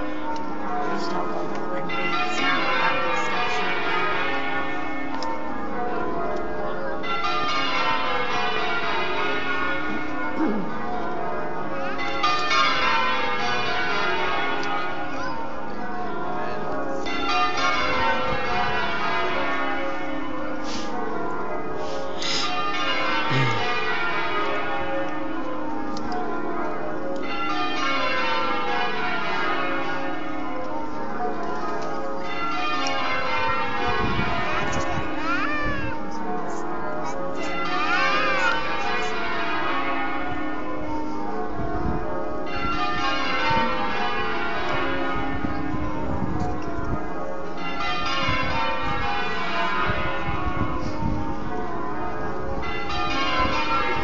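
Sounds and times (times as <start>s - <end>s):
church bells ringing: 0.0s - 54.0s.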